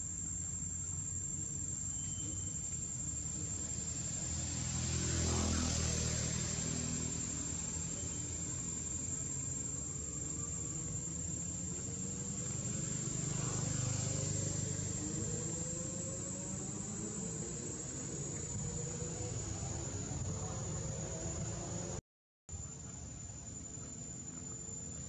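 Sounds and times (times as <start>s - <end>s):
high-pitched insect drone: 0.0s - 25.0s.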